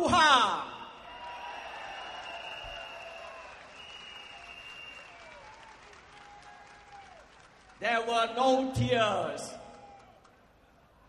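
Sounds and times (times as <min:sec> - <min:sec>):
crowd applauding: 0:01.0 - 0:07.9, 0:09.7 - 0:10.4.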